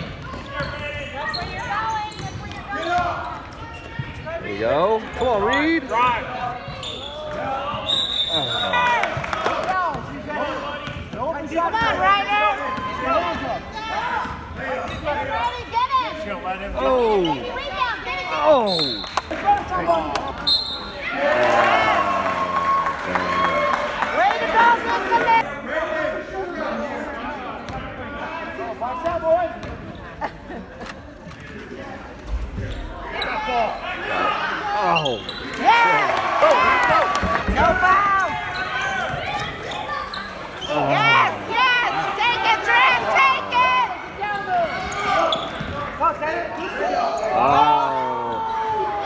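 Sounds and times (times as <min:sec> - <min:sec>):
spectators shouting: 0:21.0 - 0:25.4.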